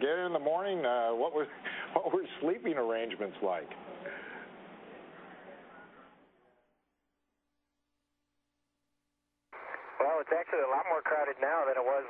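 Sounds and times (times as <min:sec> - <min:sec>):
faint steady hum: 0:00.0 - 0:07.4, 0:08.4 - 0:12.0
person speaking over radio: 0:10.0 - 0:12.0.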